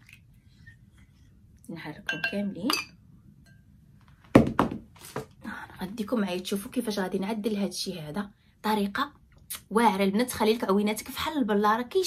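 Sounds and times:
object knocking against furniture: 0:04.3 - 0:04.9.

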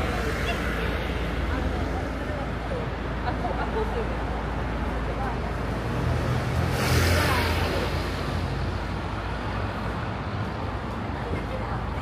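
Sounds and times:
street traffic engine hum: 0:00.0 - 0:12.0
vehicle passing: 0:04.4 - 0:10.6.

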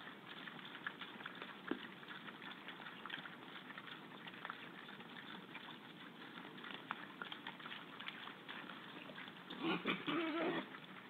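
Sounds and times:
animals rooting in wet mud: 0:00.0 - 0:11.0
wild boar squealing: 0:09.5 - 0:10.8.

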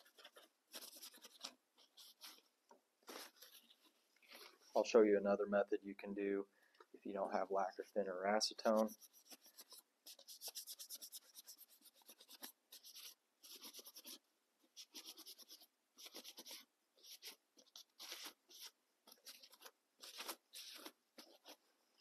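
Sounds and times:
paper towel scrubbing: 0:14.8 - 0:21.6.

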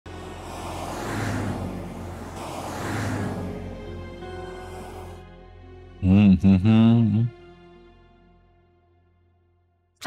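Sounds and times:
road traffic: 0:00.0 - 0:06.1
car passing close by: 0:00.1 - 0:05.2.

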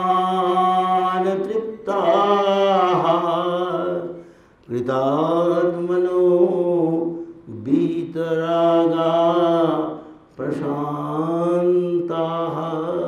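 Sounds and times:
man chanting: 0:00.0 - 0:13.0.

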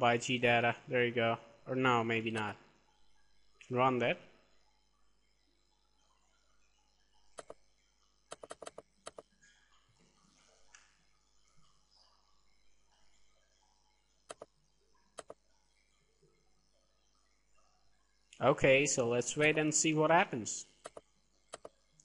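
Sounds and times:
computer mouse clicks: 0:07.4 - 0:07.6, 0:08.3 - 0:09.3, 0:14.3 - 0:14.6, 0:15.2 - 0:15.4, 0:20.8 - 0:22.0.

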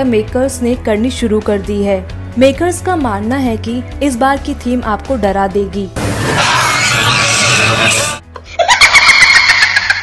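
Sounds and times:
background music: 0:00.0 - 0:10.0
group of people laughing: 0:06.2 - 0:10.0.

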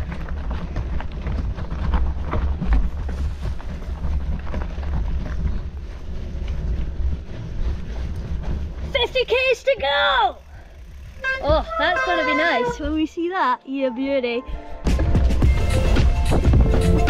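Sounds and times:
bike clicks and rattles: 0:00.0 - 0:12.9
tyres crunching on gravel: 0:00.0 - 0:13.3.

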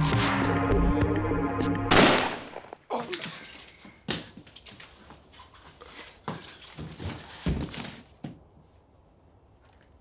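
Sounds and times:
loud gunshot with echo: 0:01.9 - 0:02.6.

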